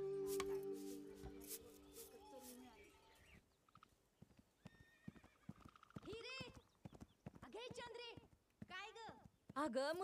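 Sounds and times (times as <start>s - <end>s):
horse hooves clip-clopping: 3.8s - 10.0s.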